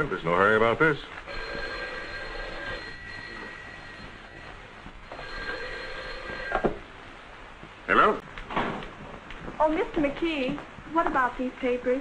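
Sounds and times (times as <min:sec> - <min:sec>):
telephone bell ringing: 0:01.3 - 0:06.8.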